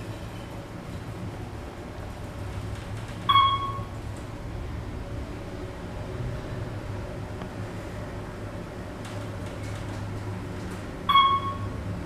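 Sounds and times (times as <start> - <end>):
elevator hum: 0.0 - 12.0
elevator electronic ding: 3.2 - 4.0, 11.0 - 11.8.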